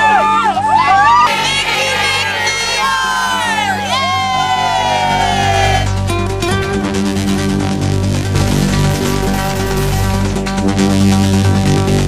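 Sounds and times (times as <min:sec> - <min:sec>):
crowd cheering and shouting: 0:00.0 - 0:06.0
voices in long falling cries: 0:00.7 - 0:05.9.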